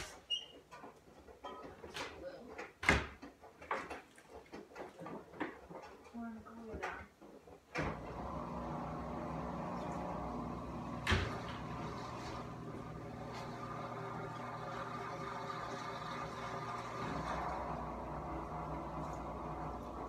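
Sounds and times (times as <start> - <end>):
appliance humming: 7.8 - 20.0.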